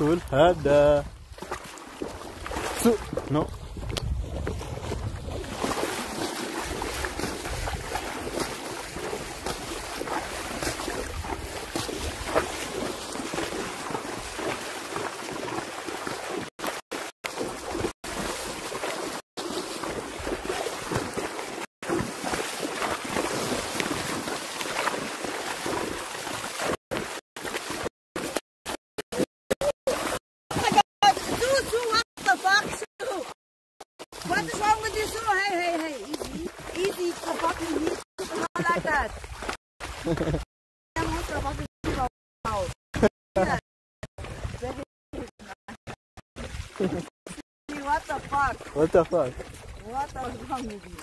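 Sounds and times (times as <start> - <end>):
hooves splashing in water: 0.0 - 33.4, 34.0 - 43.6, 44.2 - 51.0
wind on microphone: 3.1 - 5.6.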